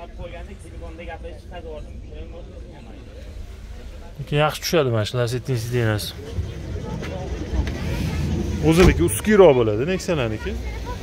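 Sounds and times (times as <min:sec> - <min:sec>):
distant voices talking: 0:00.0 - 0:11.0
low outdoor rumble: 0:00.0 - 0:11.0.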